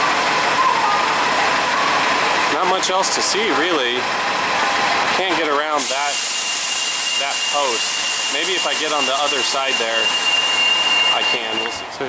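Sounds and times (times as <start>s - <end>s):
bus engine idling: 0.0s - 12.0s.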